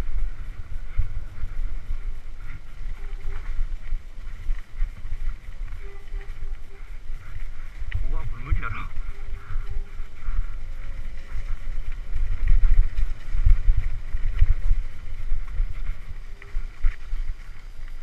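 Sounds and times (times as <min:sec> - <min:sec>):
mountain bike rattling on trail: 0:00.0 - 0:18.0
wind buffeting microphone: 0:00.0 - 0:18.0.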